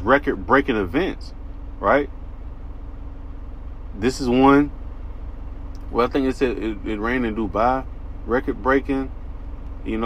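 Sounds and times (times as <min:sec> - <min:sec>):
faint constant hum: 0:00.0 - 0:10.0
low engine-like rumble: 0:00.0 - 0:10.0.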